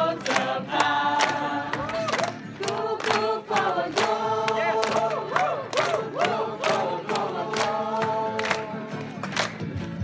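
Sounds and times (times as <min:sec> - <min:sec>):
young voices singing together: 0:00.0 - 0:09.2
sharp hand claps: 0:00.2 - 0:10.0.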